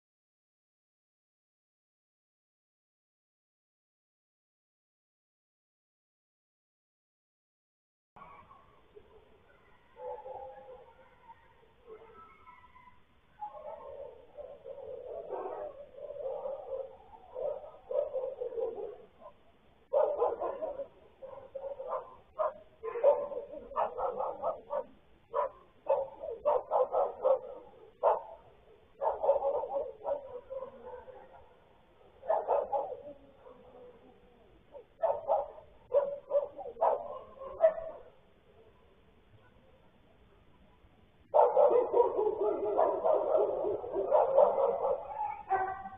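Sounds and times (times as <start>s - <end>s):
dog barking and yelping: 8.2s - 38.2s, 41.3s - 45.9s
dog howling: 41.4s - 45.9s.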